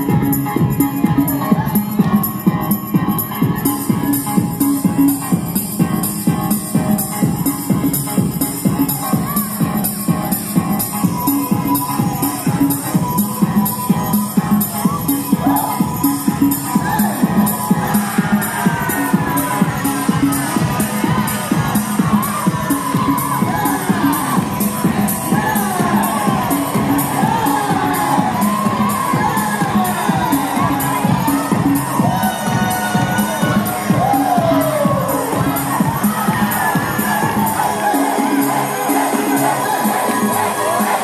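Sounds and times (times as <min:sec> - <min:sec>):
house music with steady beat: 0:00.0 - 0:41.0
crowd cheering and whooping: 0:10.8 - 0:41.0.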